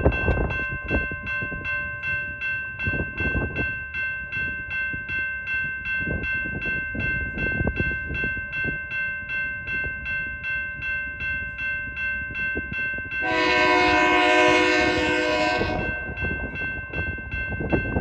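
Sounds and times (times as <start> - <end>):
freight train rumble: 0.0 - 18.0
railroad crossing bell ringing: 0.0 - 18.0
locomotive air horn: 13.2 - 16.0.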